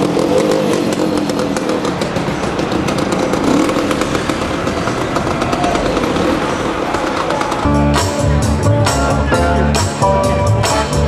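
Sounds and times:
scooter engine running: 0.0s - 8.3s.

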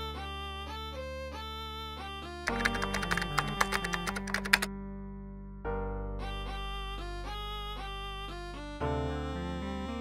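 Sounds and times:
background music with held notes: 0.0s - 10.0s
keyboard typing clicks: 2.5s - 4.7s.

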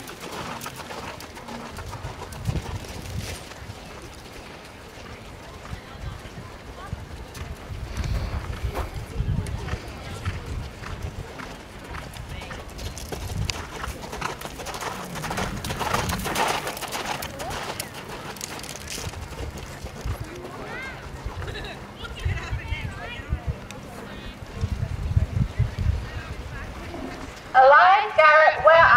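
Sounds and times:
horse hoofbeats on sand: 0.0s - 23.0s.

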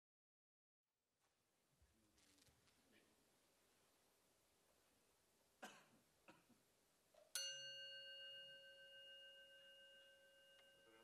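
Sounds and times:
metal chime ringing: 7.3s - 11.0s.

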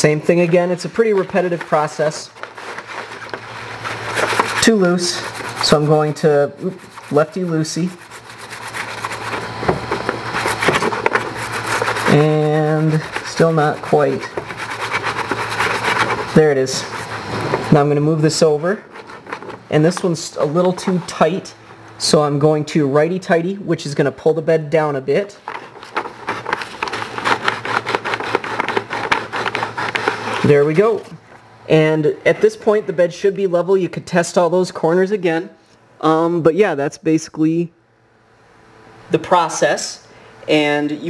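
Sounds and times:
paper rustling and scraping: 0.0s - 21.9s, 25.2s - 31.2s.

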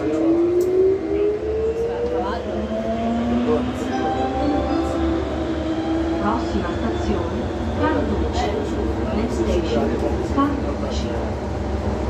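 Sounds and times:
low train running rumble: 0.0s - 12.0s.

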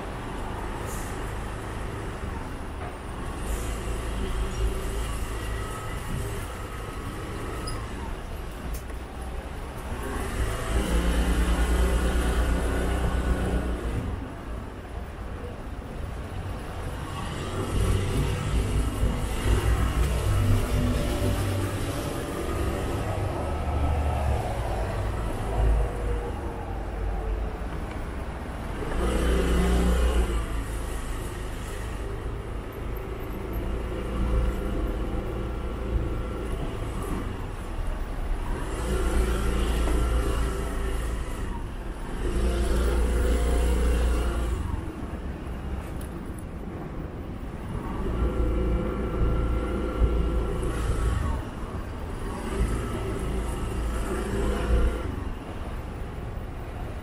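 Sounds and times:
vehicles passing: 0.0s - 57.0s.

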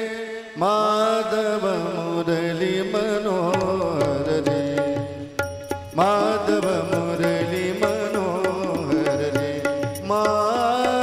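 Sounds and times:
person singing: 0.0s - 11.0s
harmonium: 2.4s - 11.0s
hand cymbals striking: 4.7s - 11.0s.

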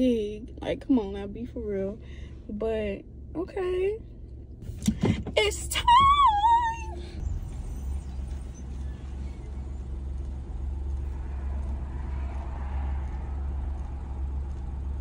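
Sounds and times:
car idling: 0.0s - 15.0s
woman squealing: 5.8s - 7.2s.

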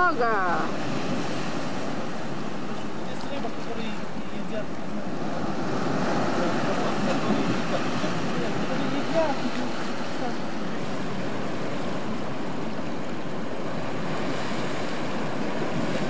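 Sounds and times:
sea surf on rocky shore: 0.0s - 16.0s.

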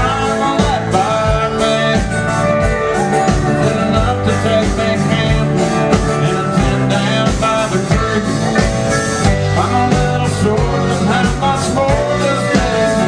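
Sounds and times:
live country band playing: 0.0s - 13.0s.

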